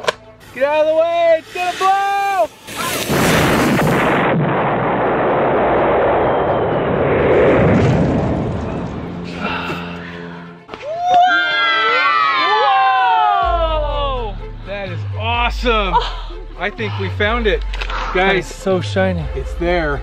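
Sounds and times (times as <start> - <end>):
dynamite explosion: 2.6 - 9.1.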